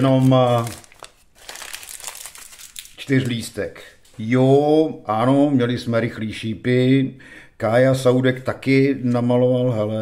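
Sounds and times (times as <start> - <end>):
wrapper crinkling: 0.0 - 3.6.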